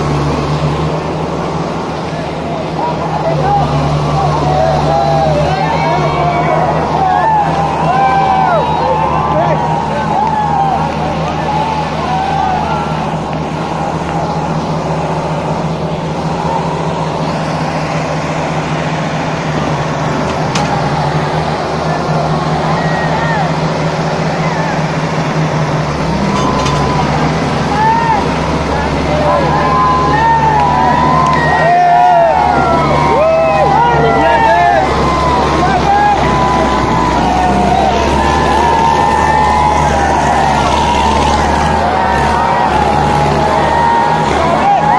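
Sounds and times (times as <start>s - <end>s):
crowd shouting: 0.0s - 44.9s
tractor diesel engines under load: 0.0s - 44.9s.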